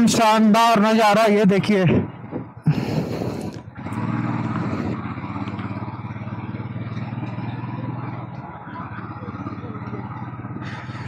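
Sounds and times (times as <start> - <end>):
motorcycle engine cruising: 1.6 - 11.0
wind noise on microphone: 1.8 - 3.8.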